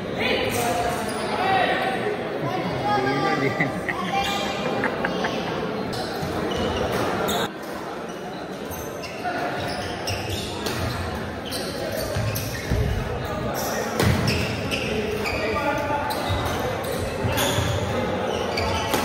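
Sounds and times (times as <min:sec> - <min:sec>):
background chatter: 0:00.0 - 0:19.0.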